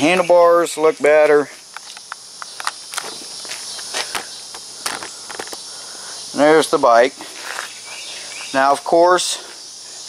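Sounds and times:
insects chirring: 0.0s - 10.0s
footsteps on concrete: 1.1s - 5.7s, 7.1s - 9.6s.

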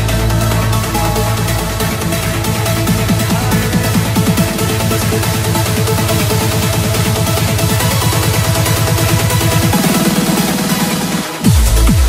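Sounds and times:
fast rolling bassline: 0.0s - 12.0s.

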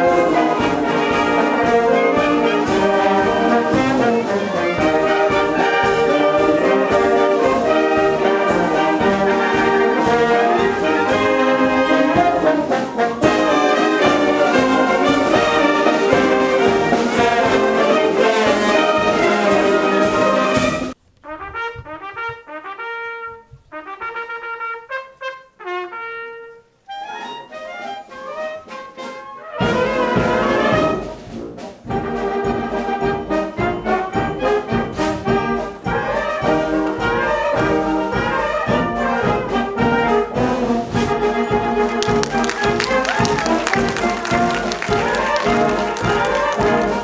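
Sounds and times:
brass band playing loudly: 0.0s - 47.0s
solo trumpet: 0.0s - 47.0s.

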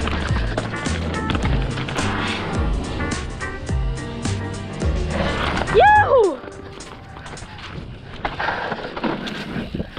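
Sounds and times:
background music: 0.0s - 7.8s
bike rolling on dirt trail: 0.0s - 9.9s
short whoop: 5.7s - 6.4s.

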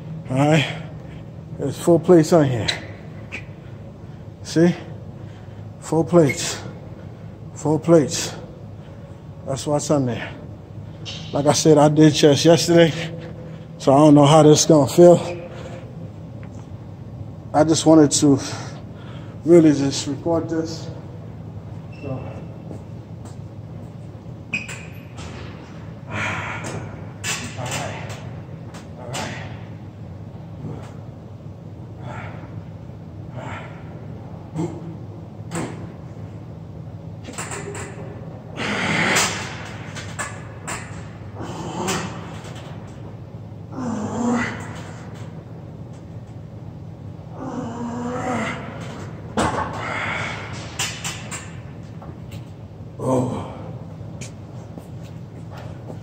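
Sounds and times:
steady low hum: 0.0s - 56.0s
man grunting and exhaling: 26.1s - 28.3s, 29.0s - 29.8s, 32.0s - 32.7s, 33.3s - 35.0s, 38.5s - 39.6s, 41.4s - 42.4s, 43.7s - 45.1s, 47.3s - 50.8s, 53.0s - 53.8s.

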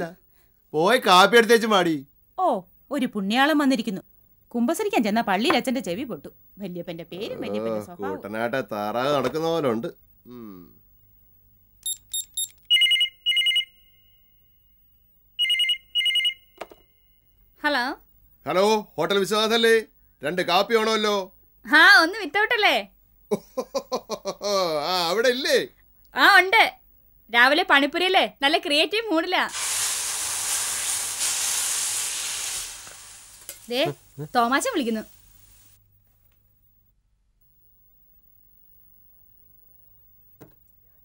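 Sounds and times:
telephone high beeps: 11.8s - 14.3s, 15.4s - 16.9s
telephone warbling ring: 15.4s - 16.7s
food sizzling in a pan: 29.5s - 35.8s.

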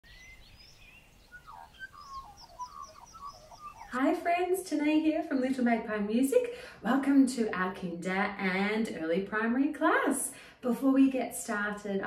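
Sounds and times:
birds chirping and warbling: 0.0s - 4.0s.

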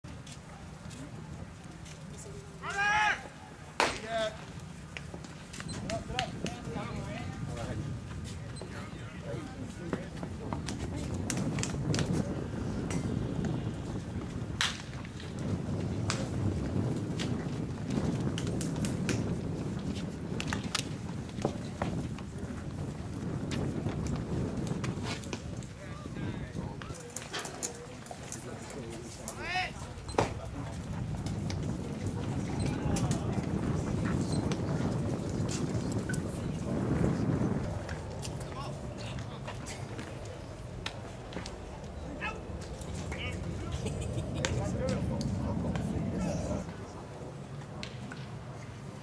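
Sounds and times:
person shouting a drawn-out call: 2.6s - 3.3s
baseball bat hitting ball: 3.8s - 4.0s
indistinct background voices: 25.8s - 47.8s.

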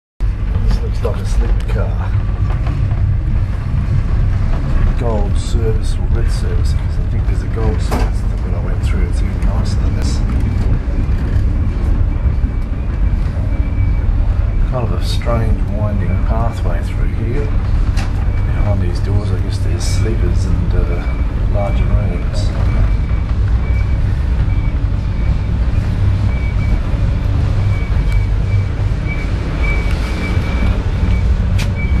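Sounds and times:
train rumbling: 0.2s - 32.0s.

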